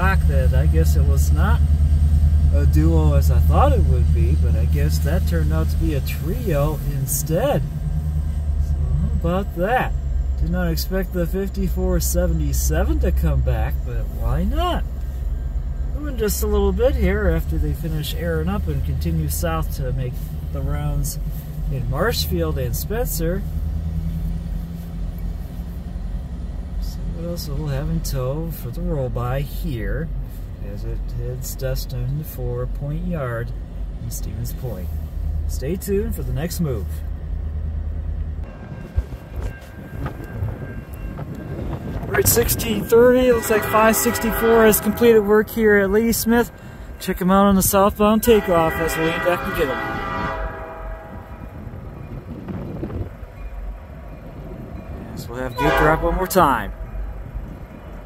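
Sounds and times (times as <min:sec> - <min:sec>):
car engine rumble: 0:00.0 - 0:58.0
diesel locomotives idling: 0:00.0 - 0:58.0.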